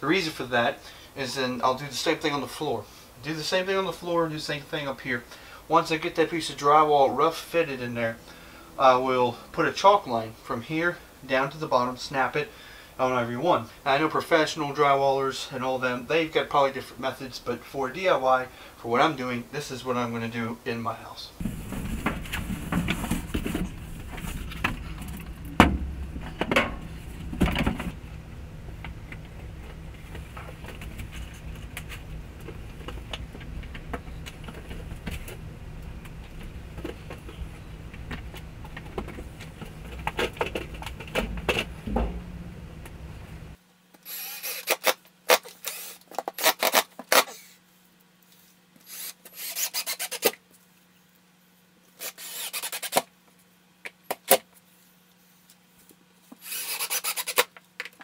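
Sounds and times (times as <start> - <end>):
low steady hum: 0.0 - 44.7
board thudding against framing: 25.5 - 28.0, 39.7 - 43.6
drywall knocking against studs: 41.0 - 43.1
cordless drill driving screws: 44.0 - 47.5, 48.8 - 50.3, 52.0 - 53.0, 56.4 - 57.4.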